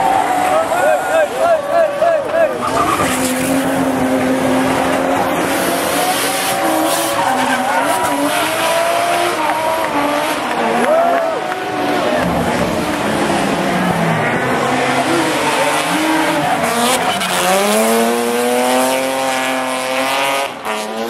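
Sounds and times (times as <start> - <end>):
car engine revving hard: 0.0 - 21.0.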